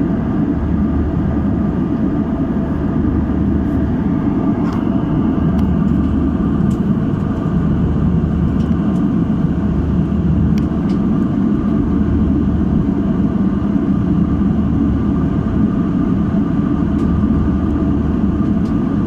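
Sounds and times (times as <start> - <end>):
airliner cabin drone: 0.0 - 19.0.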